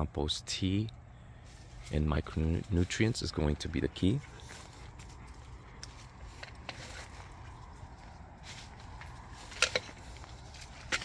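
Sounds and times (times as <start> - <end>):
low steady rumble: 0.0 - 11.0
footsteps crunching on mulch: 1.4 - 11.0.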